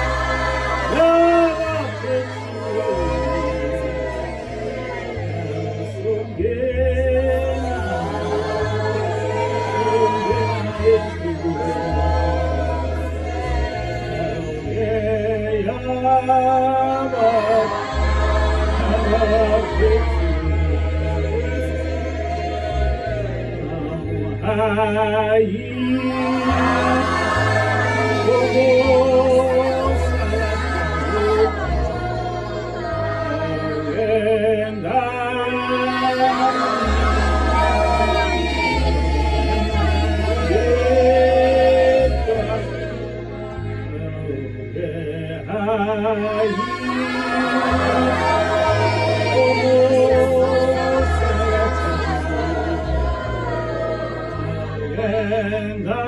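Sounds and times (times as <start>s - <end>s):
choir singing gospel: 0.0s - 56.0s
low bass notes: 0.0s - 56.0s.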